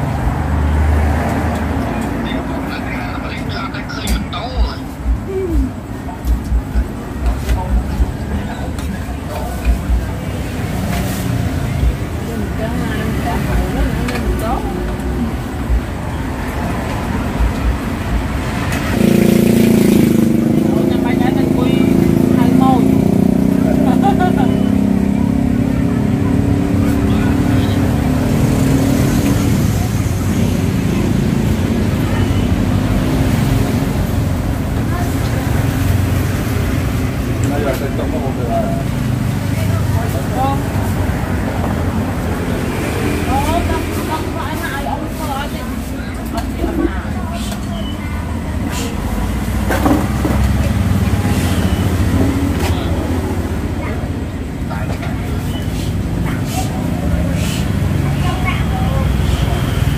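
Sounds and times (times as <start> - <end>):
people talking: 1.7 - 17.8, 19.8 - 59.9.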